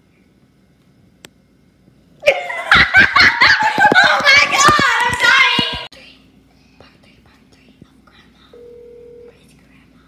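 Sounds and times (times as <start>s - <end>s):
phone calling tone beep: 8.6s - 9.3s.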